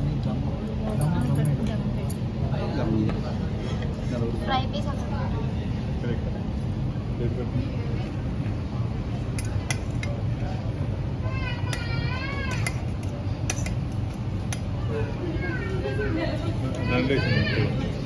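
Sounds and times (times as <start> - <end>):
restaurant rumble: 0.0 - 18.0.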